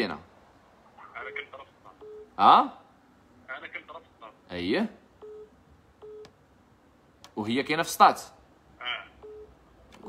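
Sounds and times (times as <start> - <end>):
telephone beeps: 1.3 - 2.3, 5.2 - 6.3, 9.2 - 9.6.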